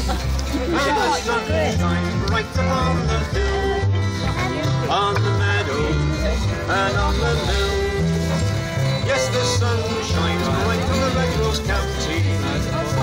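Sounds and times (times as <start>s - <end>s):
fiddle melody: 0.0s - 13.0s
strummed acoustic guitar: 0.0s - 13.0s
walking double bass line: 0.0s - 13.0s.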